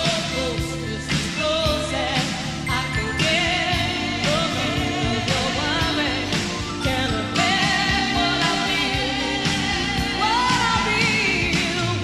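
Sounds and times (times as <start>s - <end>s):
pop band with steady drum beat: 0.0s - 12.0s
woman singing into microphone: 0.0s - 12.0s.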